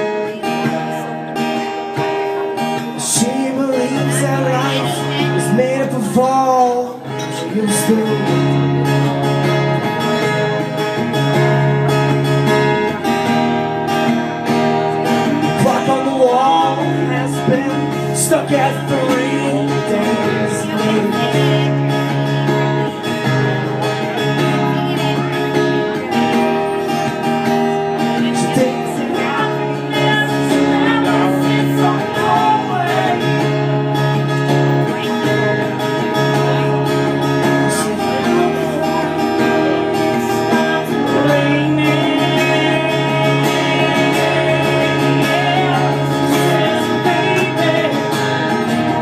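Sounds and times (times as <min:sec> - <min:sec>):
man singing: 0:00.0 - 0:10.7, 0:15.0 - 0:23.3, 0:24.0 - 0:49.0
acoustic guitar strumming chords: 0:00.0 - 0:49.0.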